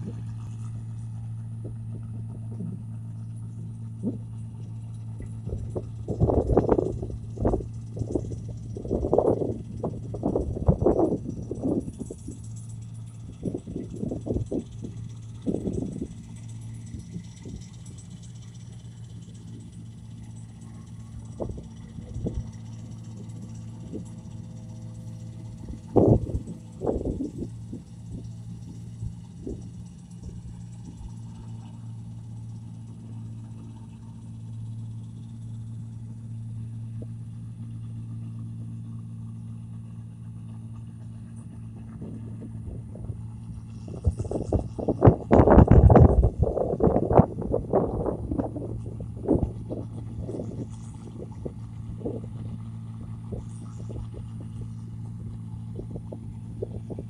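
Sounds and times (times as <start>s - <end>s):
distant harvester engine running: 0.0s - 57.0s
loud rough rumbles: 0.0s - 57.0s.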